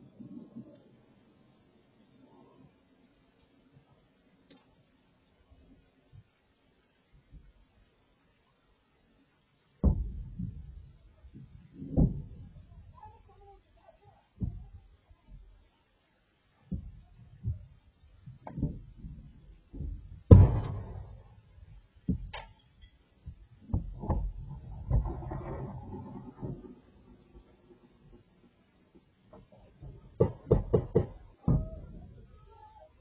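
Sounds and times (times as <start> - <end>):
sharp gunshots: 20.3 - 21.3.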